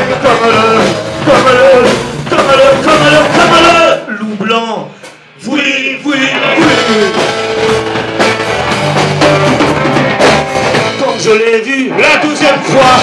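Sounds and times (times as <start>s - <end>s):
electric guitar: 0.0s - 4.0s, 6.0s - 13.0s
person singing: 0.0s - 4.0s, 5.4s - 7.7s
drums: 0.0s - 13.0s.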